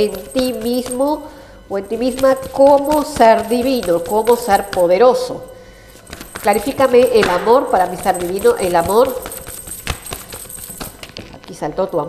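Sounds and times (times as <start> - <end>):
cards being shuffled: 6.0 - 11.6.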